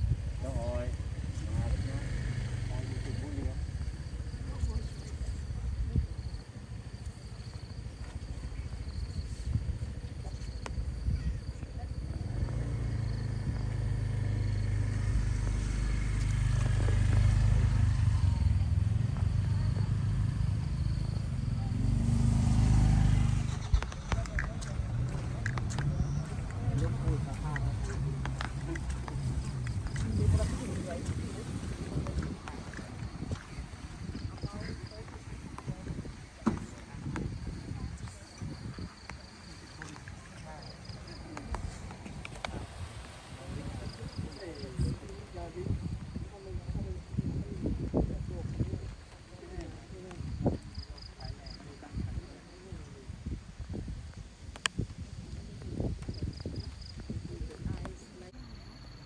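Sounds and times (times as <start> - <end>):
vehicle engine idling: 0.0 - 47.2
onlookers chatting: 0.0 - 53.8.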